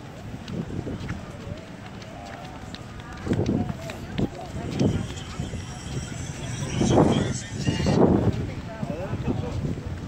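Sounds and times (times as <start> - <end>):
footsteps on paving: 0.0 - 8.5
indistinct voices: 2.5 - 8.8.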